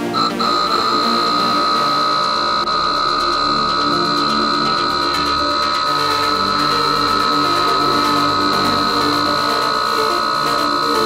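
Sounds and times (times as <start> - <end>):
air pump high whine: 0.0 - 11.0
electronic background music: 0.0 - 11.0.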